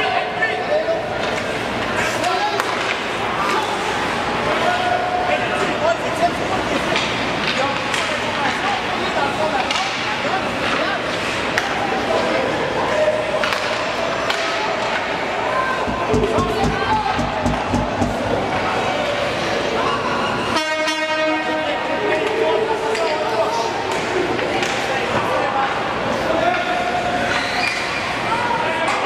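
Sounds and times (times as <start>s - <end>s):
arena noise: 0.0s - 29.0s
spectators' voices and calls: 0.0s - 29.0s
hockey sticks and puck clacking: 1.2s - 4.6s, 6.6s - 12.3s, 12.9s - 19.4s, 22.2s - 25.3s.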